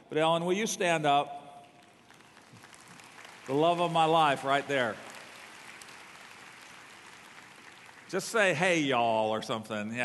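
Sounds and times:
audience applause: 1.8s - 9.5s.

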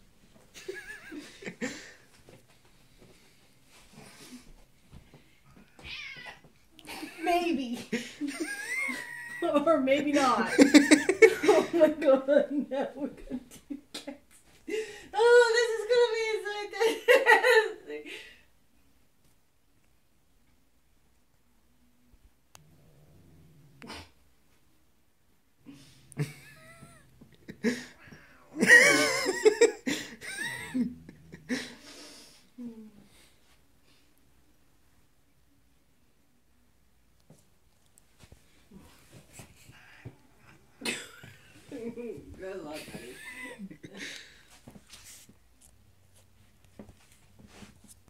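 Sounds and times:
cat meowing: 5.8s - 6.4s
faint rustling: 44.2s - 48.0s.

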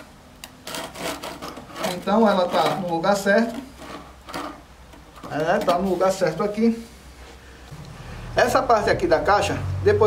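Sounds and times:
trowel scraping cement: 0.6s - 4.7s.

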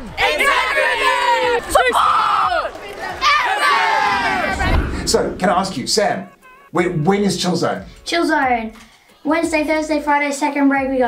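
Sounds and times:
students shouting and cheering: 0.0s - 5.2s.

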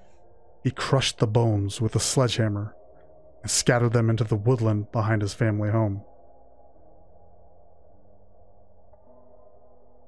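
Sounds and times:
ambient droning music: 0.0s - 10.0s.

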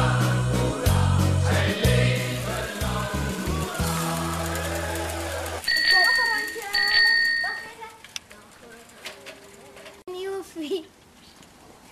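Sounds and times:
background music: 0.0s - 5.8s
bicycle bell ringing: 5.6s - 7.9s
children's voices: 5.9s - 11.0s.

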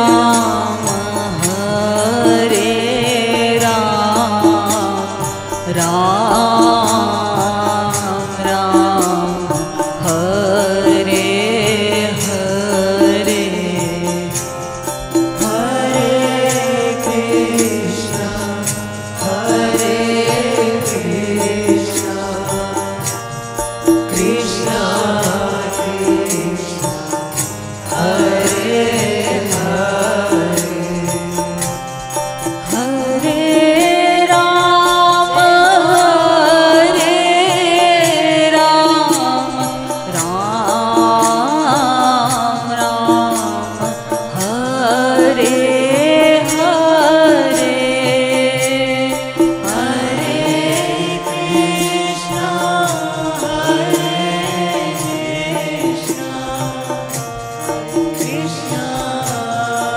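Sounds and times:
man and woman singing devotional song: 0.0s - 59.9s.

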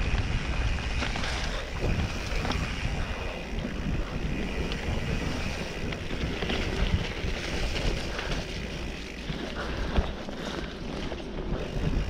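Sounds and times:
bike rattling knocks and clicks: 0.0s - 12.0s
tyres rolling on dirt: 0.0s - 12.0s
wind buffeting microphone: 0.0s - 12.0s.

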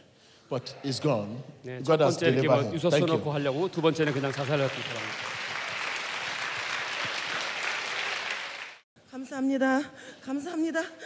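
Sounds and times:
crowd applauding: 3.2s - 8.8s.

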